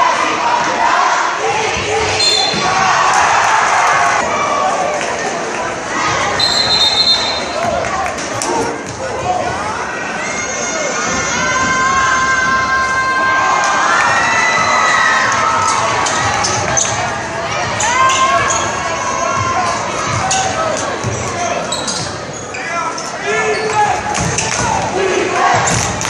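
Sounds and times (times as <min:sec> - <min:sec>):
crowd yelling and cheering: 0:00.0 - 0:26.0
sneaker squeaks: 0:02.2 - 0:02.9, 0:06.4 - 0:07.8, 0:18.0 - 0:19.5, 0:20.1 - 0:24.4.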